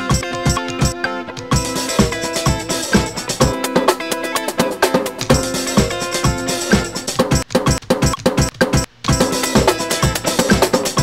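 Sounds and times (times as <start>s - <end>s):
drum loop: 0.0s - 11.0s
guitar loop: 0.0s - 11.0s.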